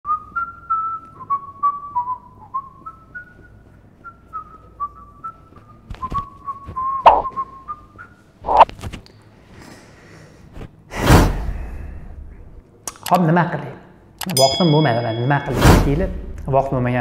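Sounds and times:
person whistling a tune: 0:00.1 - 0:08.2.

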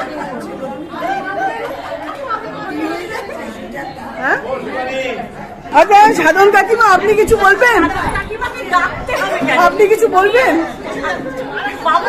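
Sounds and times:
people talking at once: 0:00.0 - 0:12.0.

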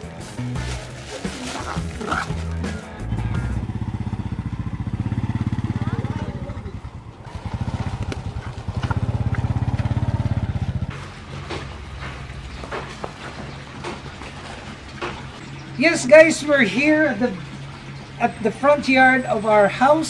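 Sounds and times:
background music: 0:00.0 - 0:04.5
motorcycle engine running: 0:00.0 - 0:14.2.

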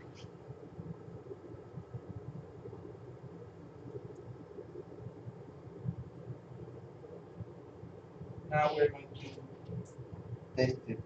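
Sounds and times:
low room rumble and hum: 0:00.0 - 0:11.0.

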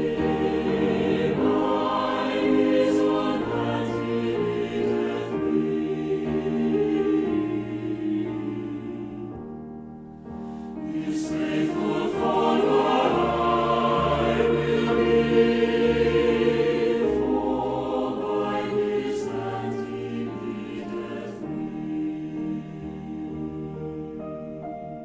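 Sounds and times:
choir singing a hymn: 0:00.0 - 0:09.5, 0:10.5 - 0:24.6.

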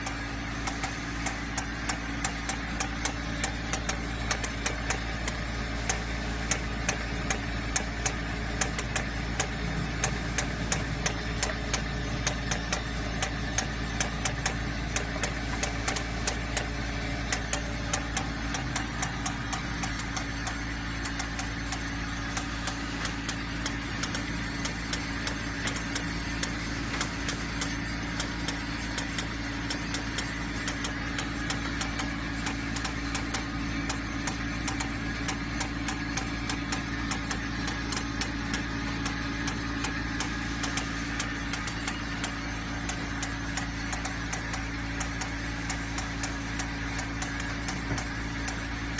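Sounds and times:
machine motor hum: 0:00.0 - 0:48.9
rapid sharp clicks: 0:00.0 - 0:48.9.

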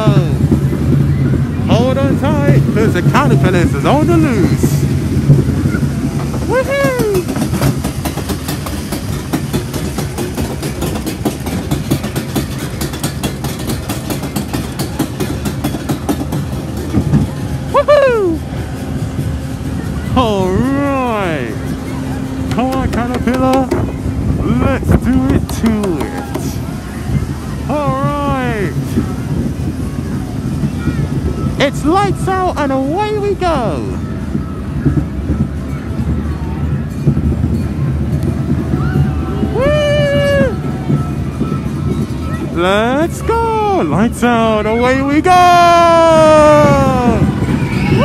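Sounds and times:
riders whooping: 0:00.0 - 0:31.6, 0:38.4 - 0:42.6, 0:45.4 - 0:48.0
roller coaster rumbling and rattling: 0:00.0 - 0:48.0.

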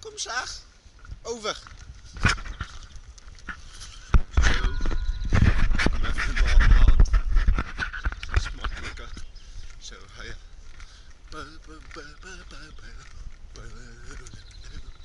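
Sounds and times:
wind buffeting microphone: 0:00.8 - 0:15.0.

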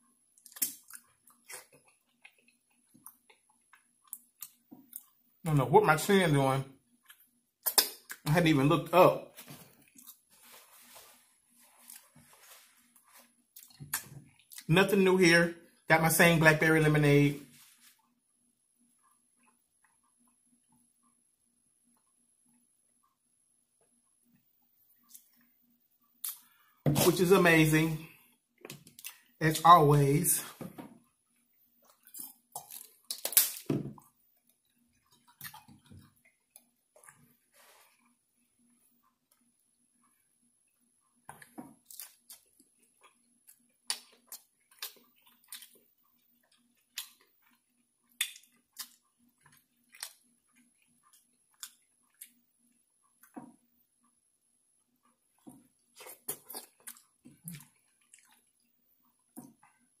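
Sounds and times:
faint low hum: 0:00.0 - 1:00.0
wet chewing and lip smacks: 0:00.3 - 0:05.2, 0:06.9 - 0:08.3, 0:09.7 - 0:14.7, 0:26.2 - 0:26.6, 0:28.4 - 0:29.3, 0:31.0 - 0:37.4, 0:41.2 - 0:53.6, 0:55.1 - 0:59.8.

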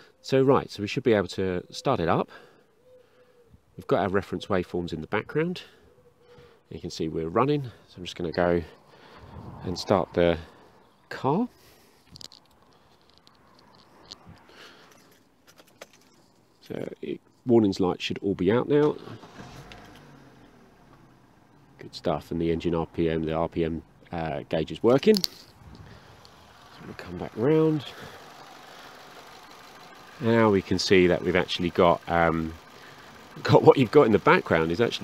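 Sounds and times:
faint car engine idling: 0:02.2 - 0:35.0
clicks and rustles of movement: 0:11.9 - 0:17.4, 0:24.9 - 0:26.8
small ticks: 0:12.0 - 0:16.2, 0:32.5 - 0:34.7.

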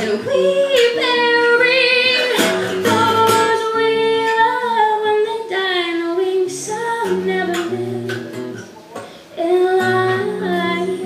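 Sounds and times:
woman singing long notes: 0:00.0 - 0:08.4, 0:09.4 - 0:11.0
acoustic guitar: 0:00.0 - 0:11.0.

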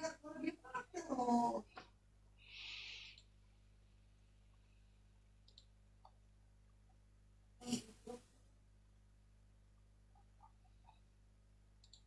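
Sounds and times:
low steady hum: 0:00.0 - 0:12.0
soft hiss: 0:01.7 - 0:05.7
faint clicks: 0:05.4 - 0:06.9, 0:11.8 - 0:12.0.

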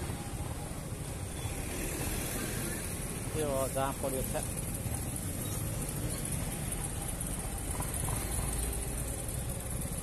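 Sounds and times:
low rumble of engines: 0:00.0 - 0:10.0.

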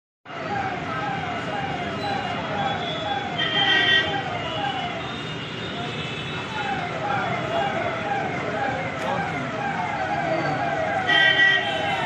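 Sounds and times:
vehicle siren sweeping: 0:00.3 - 0:12.0
crowd voices: 0:00.5 - 0:12.0.

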